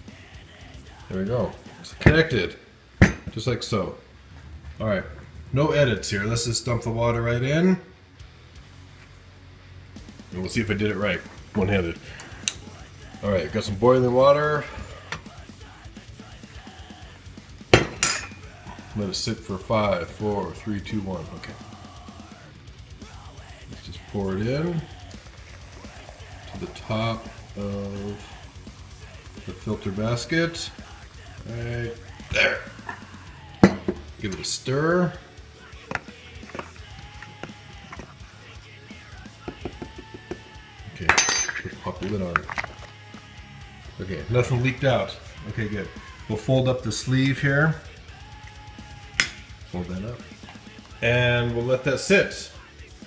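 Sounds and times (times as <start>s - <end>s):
saucepan clanking on countertop: 17.8s - 18.4s, 33.6s - 34.1s
stirrer tapping metal chamber: 17.8s - 18.4s, 33.6s - 34.1s, 49.2s - 49.5s.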